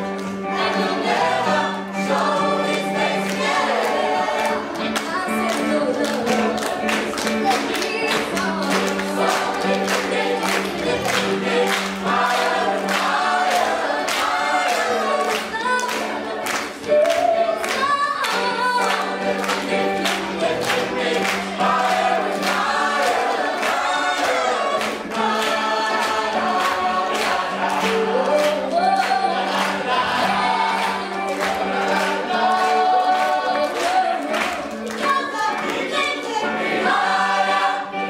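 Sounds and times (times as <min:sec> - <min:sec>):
choir singing: 0:00.0 - 0:38.0.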